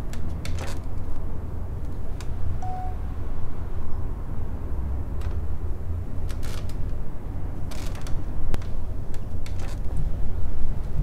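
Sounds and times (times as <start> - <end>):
faint tone: 2.6 - 3.2.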